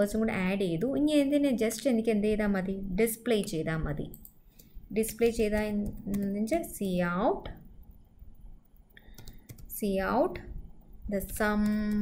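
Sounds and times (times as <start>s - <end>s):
computer keyboard key clicks: 9.0s - 9.7s.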